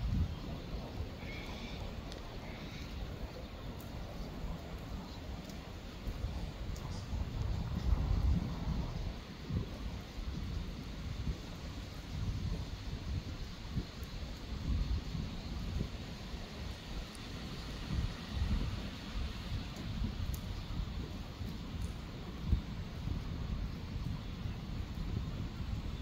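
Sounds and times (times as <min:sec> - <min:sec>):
light rain hiss: 0:00.0 - 0:26.0
wind buffeting microphone: 0:00.0 - 0:26.0.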